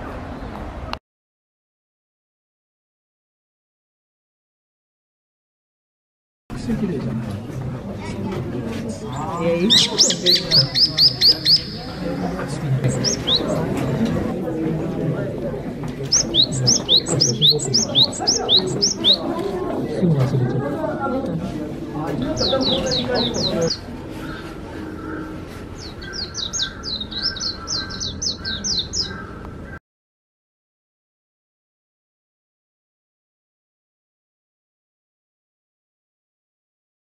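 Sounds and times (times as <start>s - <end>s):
recorded bird chirps: 9.0s - 14.1s, 16.0s - 19.4s, 22.2s - 29.8s.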